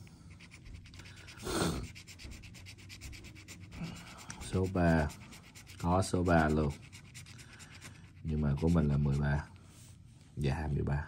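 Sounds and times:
tool scratching lottery ticket: 0.3s - 9.5s.

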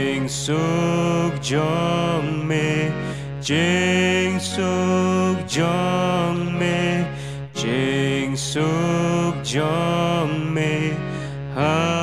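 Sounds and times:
slow hymn singing: 0.0s - 12.0s.

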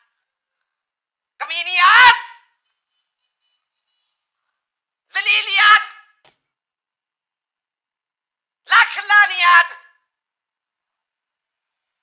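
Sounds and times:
person speaking in high voice: 1.4s - 2.5s, 5.1s - 6.2s, 8.7s - 10.0s.

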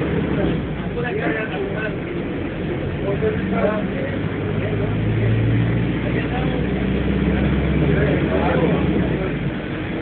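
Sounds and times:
bus engine droning: 0.0s - 10.0s
faint voices: 0.0s - 10.0s.

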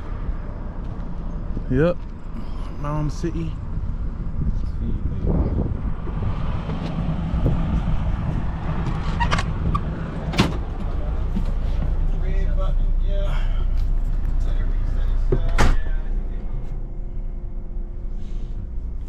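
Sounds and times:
bus engine rumbling: 0.0s - 19.0s.

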